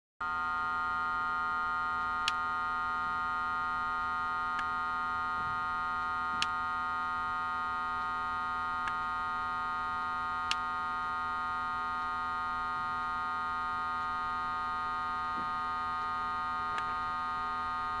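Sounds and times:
steady electronic hum: 0:00.2 - 0:18.0.

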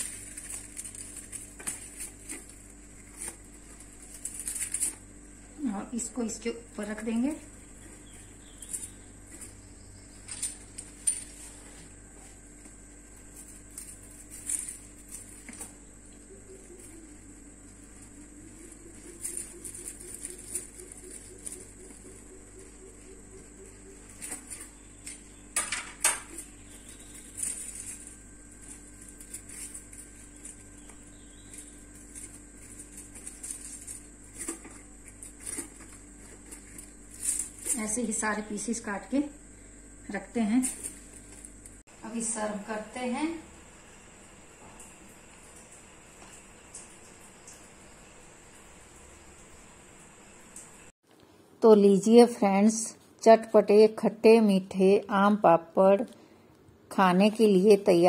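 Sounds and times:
aluminium foil crinkling: 0:00.0 - 0:11.8, 0:12.4 - 0:39.3, 0:40.2 - 0:41.8
steady low hum: 0:00.0 - 0:58.0.

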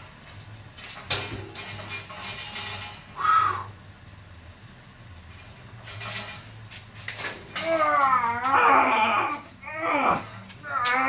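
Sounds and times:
short loud screech: 0:03.2 - 0:03.7.

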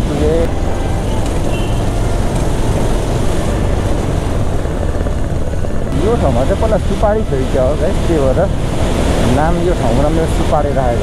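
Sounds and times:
motorcycle engine rumble: 0:00.0 - 0:11.0
wind rush on microphone: 0:00.0 - 0:11.0.

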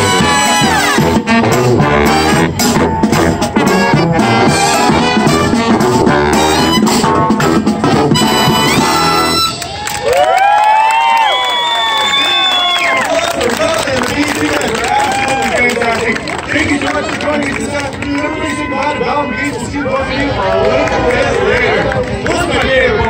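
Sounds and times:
marching brass band playing: 0:00.0 - 0:09.8.

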